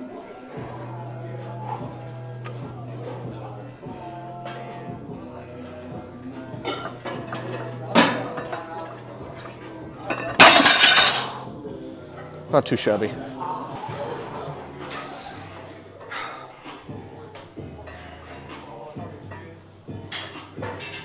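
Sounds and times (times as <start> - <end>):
gym music: 0.0 - 21.0
barbell plates crashing on floor: 10.2 - 11.4.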